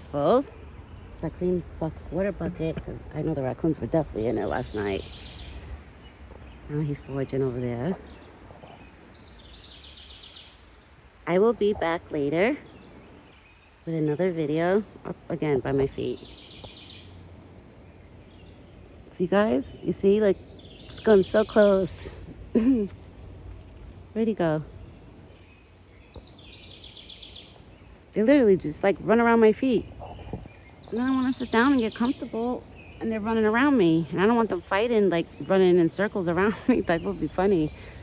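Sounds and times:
songbird trilling: 0.0 - 22.0, 23.0 - 38.0
low steady rumble: 0.0 - 38.0.

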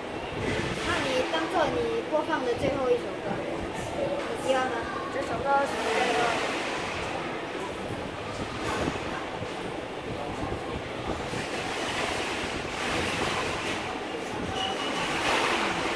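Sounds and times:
steady rushing background noise: 0.0 - 15.9.

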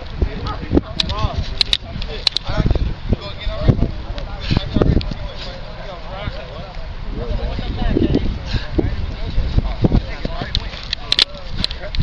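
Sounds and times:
indistinct talk: 0.0 - 12.0.

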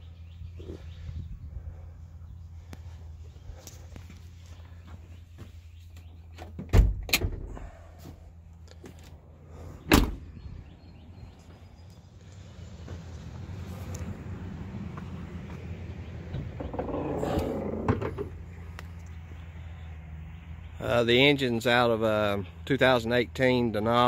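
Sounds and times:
truck doors shutting: 9.8 - 10.4, 16.0 - 18.5.

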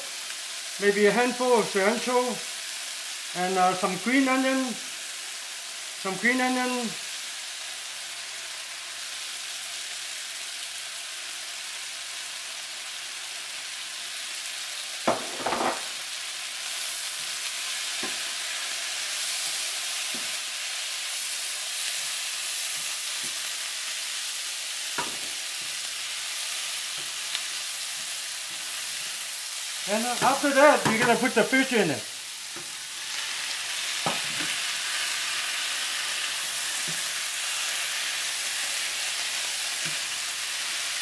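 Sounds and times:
vegetables sizzling in a frying pan: 0.0 - 41.0.

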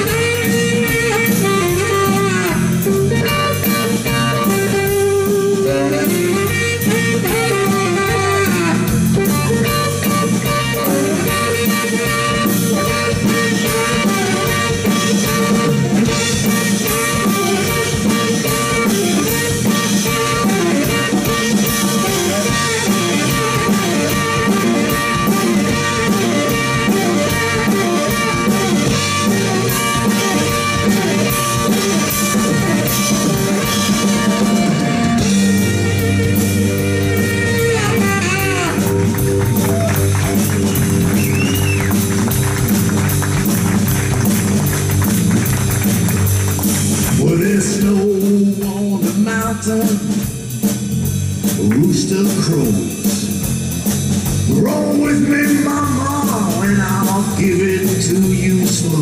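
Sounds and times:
saxophone solo: 0.0 - 47.8
electric guitar: 0.0 - 50.8
bass guitar: 0.0 - 59.0
drum kit: 0.0 - 59.0.

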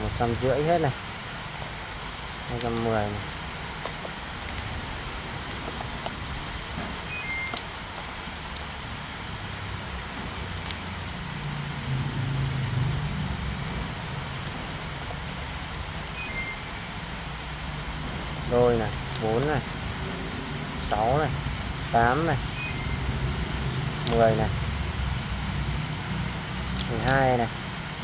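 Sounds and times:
low engine hum: 0.0 - 28.0
capacitors clicking on concrete: 10.5 - 10.8, 26.4 - 27.4.

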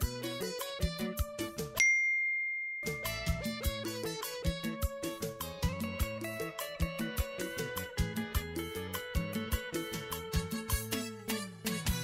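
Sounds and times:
plucked-string background music: 0.0 - 1.8, 2.9 - 12.0
high ding: 1.8 - 3.7.

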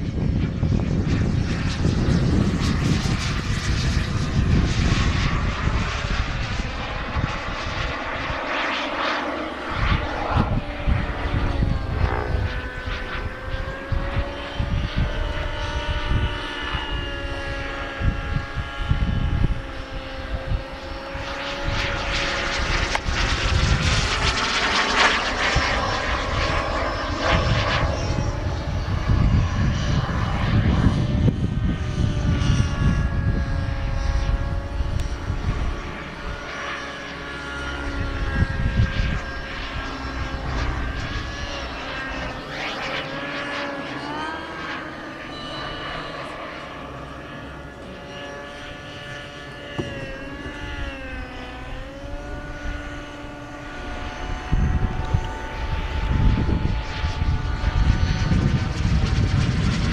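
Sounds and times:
jet turbine whining: 0.0 - 59.9.

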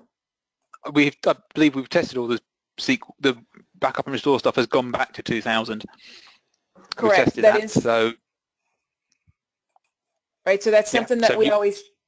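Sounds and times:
person speaking: 0.9 - 6.3, 6.9 - 8.2, 10.7 - 11.8.

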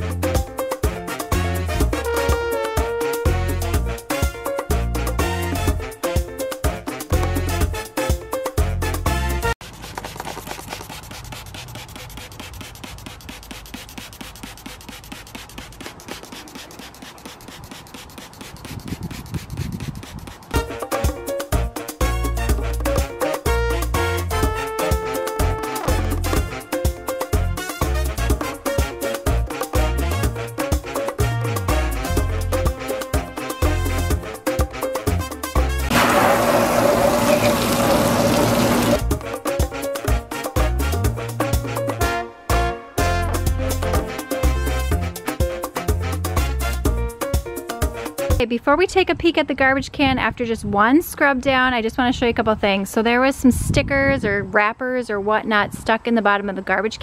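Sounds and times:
loud background music: 0.0 - 9.5, 20.6 - 48.4
spray bottle squirting: 9.6 - 20.6, 35.9 - 39.1.

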